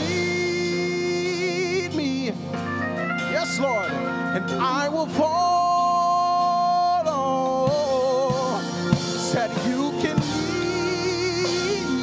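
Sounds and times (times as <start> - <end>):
keyboard and organ chords: 0.0 - 12.0.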